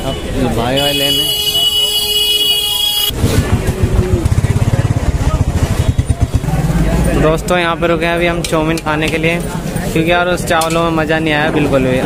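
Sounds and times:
motorcycle engine running: 0:03.1 - 0:07.9.

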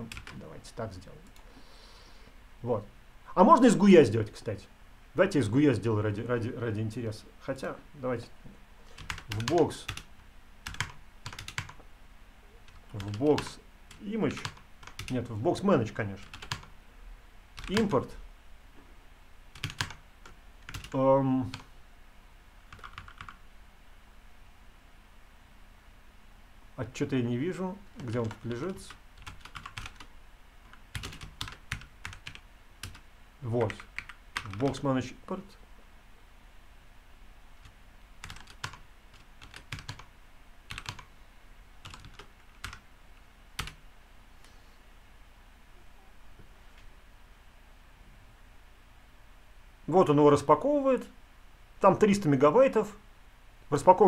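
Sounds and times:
typing on computer keyboard: 0:00.1 - 0:00.4, 0:09.0 - 0:11.8, 0:12.7 - 0:15.2, 0:16.2 - 0:16.7, 0:17.6 - 0:17.9, 0:19.6 - 0:21.7, 0:22.7 - 0:23.4, 0:28.0 - 0:33.0, 0:33.6 - 0:34.8, 0:37.6 - 0:40.1, 0:40.7 - 0:41.1, 0:41.8 - 0:42.8, 0:43.6 - 0:43.8.

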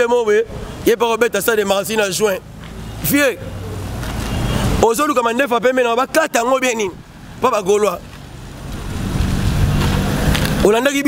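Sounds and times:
road traffic rumble: 0:00.0 - 0:11.0
vehicle passing: 0:00.4 - 0:11.0.

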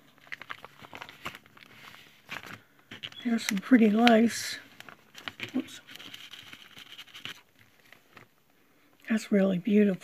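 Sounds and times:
plastic packaging crinkling: 0:00.0 - 0:08.4.

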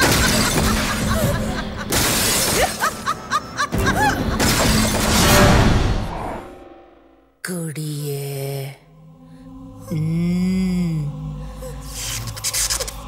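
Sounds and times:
crashing shattering effects: 0:00.0 - 0:03.1, 0:04.4 - 0:06.2
dramatic film music: 0:00.0 - 0:13.0.

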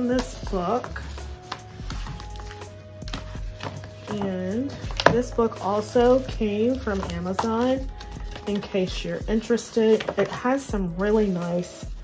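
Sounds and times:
paper dust jacket handling taps: 0:00.0 - 0:08.8
soft background music: 0:00.0 - 0:12.0.

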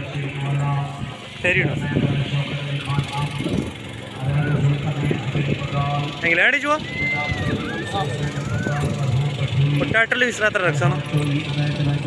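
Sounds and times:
low engine-like hum: 0:00.0 - 0:12.0
people's voices: 0:00.0 - 0:12.0.

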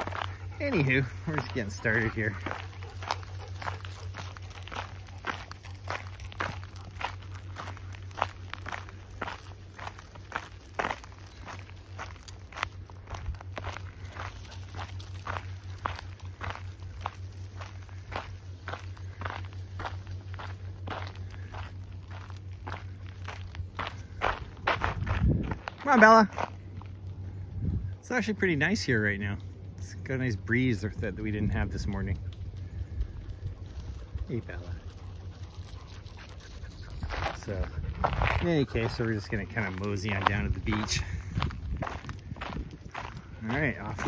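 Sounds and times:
footsteps on gravel: 0:00.0 - 0:44.0.

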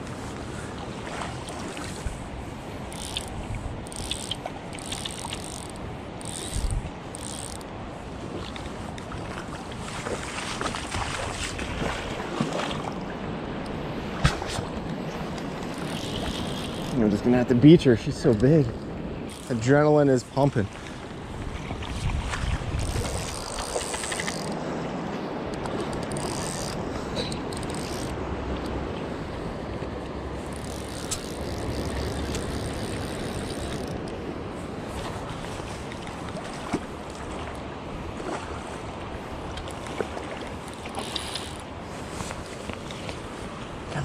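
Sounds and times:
wind rumbling on microphone: 0:00.0 - 0:19.5, 0:20.2 - 0:44.0
river current rushing: 0:00.0 - 0:44.0.

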